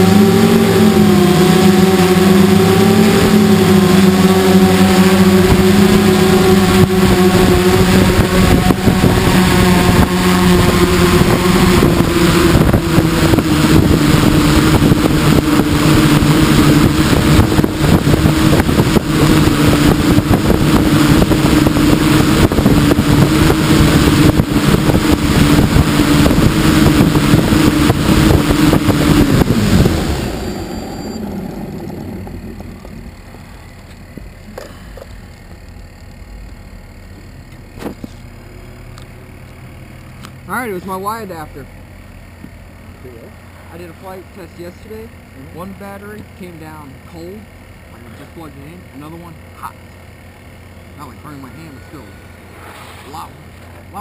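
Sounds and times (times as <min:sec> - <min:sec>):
rough rushing noise: 0:00.0 - 0:36.4, 0:51.0 - 0:54.0
drone motors and propellers humming: 0:00.0 - 0:54.0.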